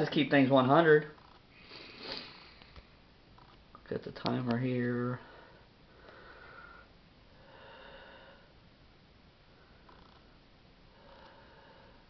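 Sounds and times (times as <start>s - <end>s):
soft breath or sniff: 1.5s - 2.9s, 5.3s - 8.5s
person speaking: 3.8s - 5.3s.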